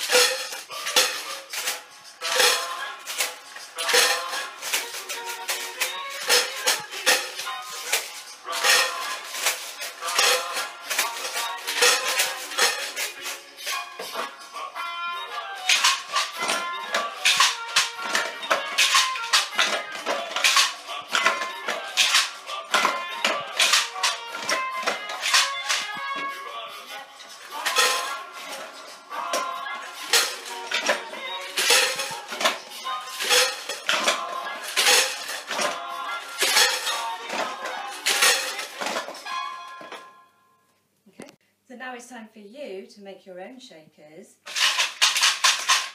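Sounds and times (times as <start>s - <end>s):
homemade shakers rattling: 0.0s - 40.0s, 44.4s - 45.9s
recorded music: 0.0s - 42.8s, 44.4s - 45.9s.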